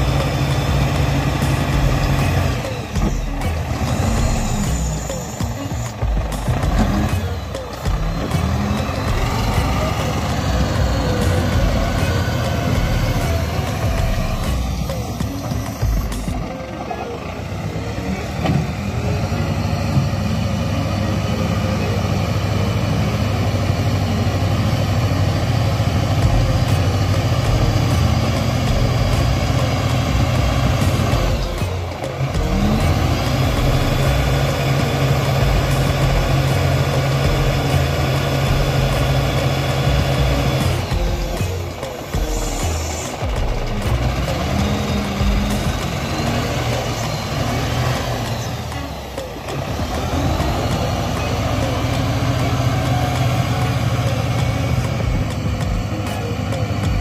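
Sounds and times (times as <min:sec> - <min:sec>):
wheel loader diesel engine: 0:00.0 - 0:57.0.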